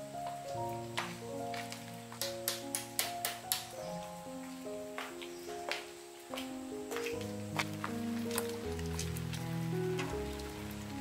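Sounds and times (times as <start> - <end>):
melody of held notes: 0.0 - 11.0.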